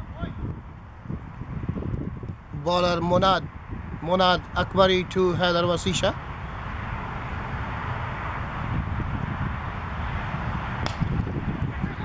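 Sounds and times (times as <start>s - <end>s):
wind rumble on microphone: 0.0s - 12.0s
cricket bat striking ball: 10.8s - 11.2s.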